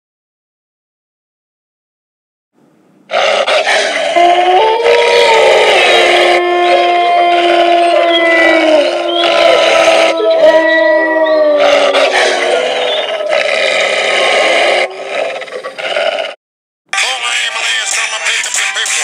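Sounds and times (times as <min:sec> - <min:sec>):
wolves howling: 0:03.1 - 0:16.4.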